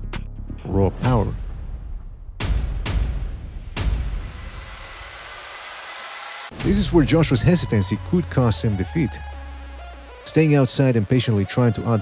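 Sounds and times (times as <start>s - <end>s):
deep boom: 0.9s - 4.8s, 6.5s - 9.3s
hiss-like wash of noise: 4.2s - 7.7s.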